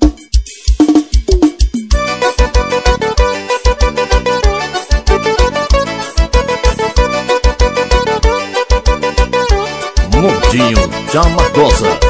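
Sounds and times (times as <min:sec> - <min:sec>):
drums playing: 0:00.0 - 0:08.2, 0:09.6 - 0:12.0
band playing: 0:01.9 - 0:12.0.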